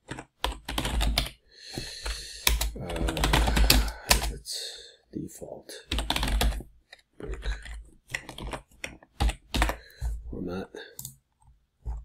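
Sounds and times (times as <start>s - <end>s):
typing on computer keyboard: 0.0s - 4.4s, 5.8s - 9.9s.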